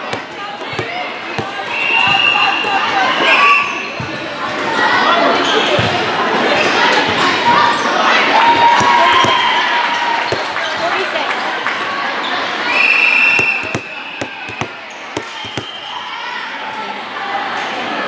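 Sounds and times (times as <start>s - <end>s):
volleyball bouncing on floor: 0.0s - 2.2s, 8.4s - 9.6s, 10.2s - 11.0s, 13.3s - 15.9s
people chattering and calling out: 0.0s - 18.0s.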